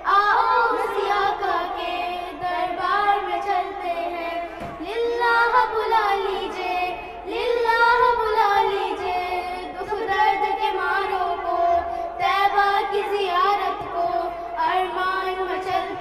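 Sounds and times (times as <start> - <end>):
girls singing into microphones: 0.0 - 16.0.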